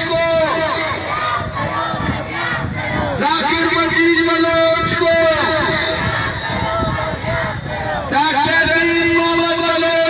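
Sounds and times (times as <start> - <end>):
murmur of crowd: 0.0 - 10.0
man chanting through loudspeaker: 3.1 - 6.0, 8.0 - 10.0.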